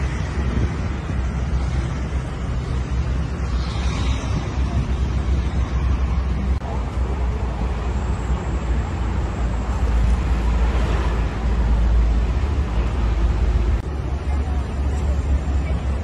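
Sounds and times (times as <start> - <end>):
street traffic: 0.0 - 16.0
wind buffeting microphone: 0.0 - 16.0.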